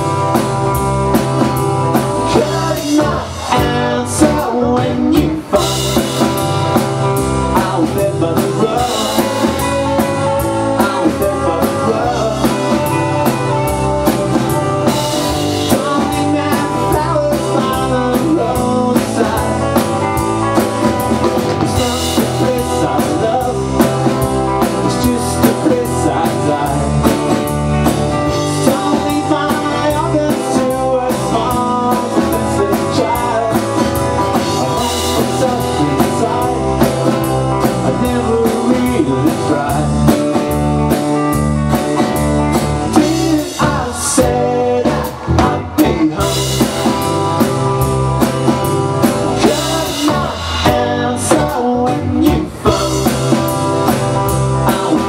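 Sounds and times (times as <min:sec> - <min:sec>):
live rock band playing: 0:00.0 - 0:55.0.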